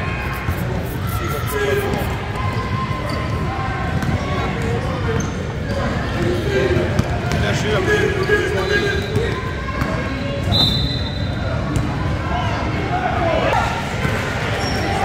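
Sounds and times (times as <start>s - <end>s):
voices of players and spectators: 0.0s - 15.0s.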